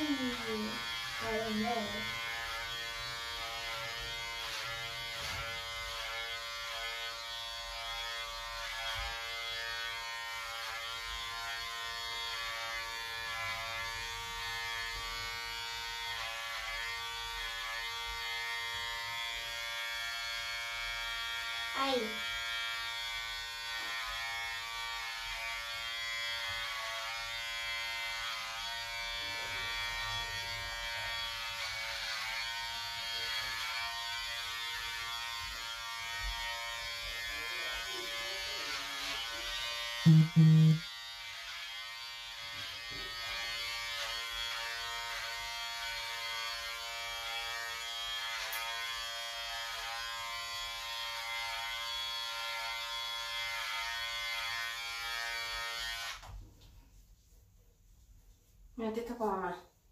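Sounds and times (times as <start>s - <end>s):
electric hair clippers humming: 0.0s - 56.3s.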